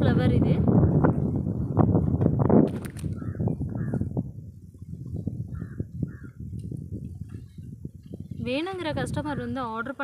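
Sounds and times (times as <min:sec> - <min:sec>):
low rumble on microphone: 0:00.0 - 0:09.5.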